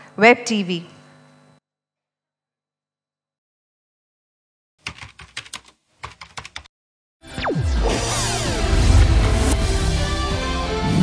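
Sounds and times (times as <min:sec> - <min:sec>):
computer keyboard typing: 0:04.8 - 0:06.7.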